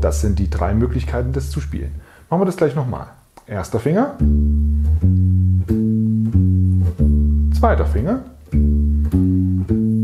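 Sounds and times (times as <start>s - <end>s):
bass guitar arpeggio: 0.0s - 2.0s, 4.2s - 10.0s.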